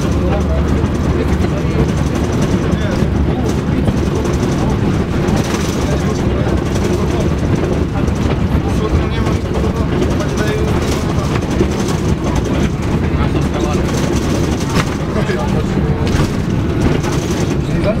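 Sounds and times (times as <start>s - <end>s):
bus engine and road rumble: 0.0s - 18.0s
indistinct voices: 0.0s - 18.0s.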